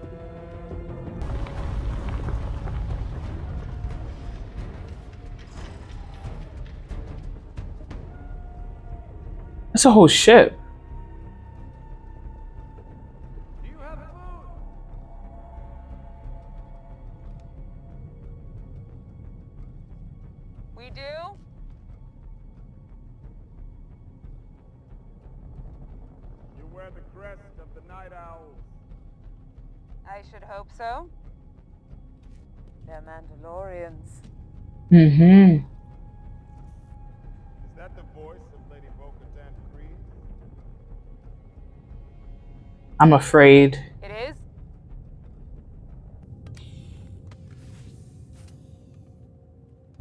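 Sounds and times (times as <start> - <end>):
background score music: 0.0 - 50.0
person speaking: 9.8 - 10.6, 34.9 - 35.6, 43.0 - 43.9.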